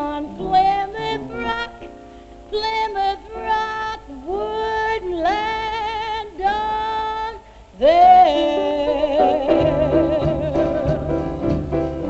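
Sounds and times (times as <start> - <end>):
jazz combo playing: 0.0 - 2.7, 8.0 - 12.0
woman singing jazz: 0.0 - 12.0.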